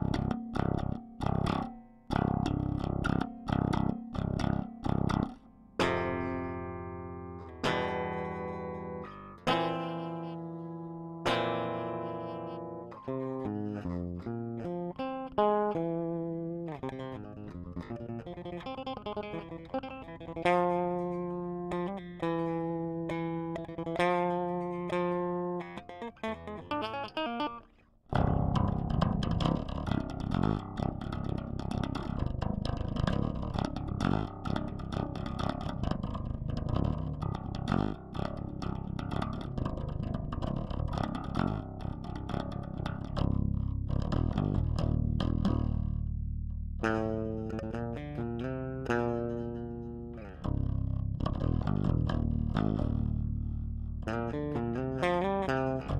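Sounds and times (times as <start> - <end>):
electric bass melody: 0.0 - 55.9.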